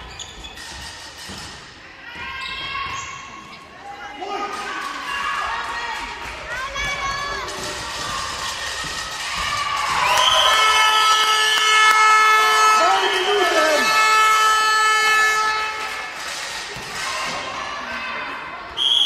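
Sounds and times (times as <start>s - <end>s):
voices in a hall: 0.0s - 19.0s
referee's whistle: 18.8s - 19.0s.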